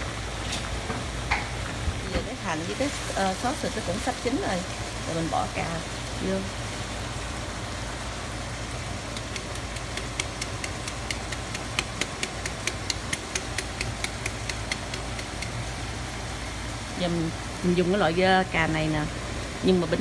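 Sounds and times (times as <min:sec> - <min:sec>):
sauce popping in frying pan: 0:00.3 - 0:05.1, 0:08.1 - 0:15.9.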